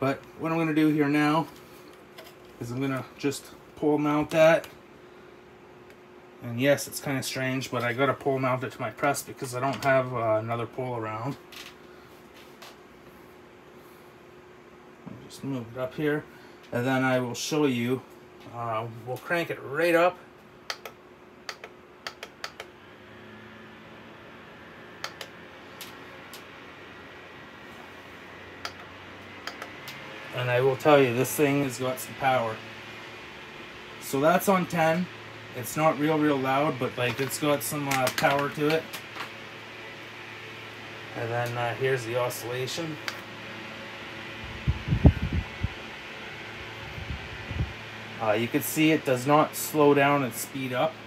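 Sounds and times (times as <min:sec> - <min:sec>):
fan motor hum and airflow: 0:00.0 - 0:51.0
fan button clicks: 0:20.7 - 0:22.8, 0:25.0 - 0:26.5, 0:28.6 - 0:30.1, 0:37.0 - 0:39.4, 0:43.0 - 0:43.3
airflow buffeting microphone: 0:43.9 - 0:49.6.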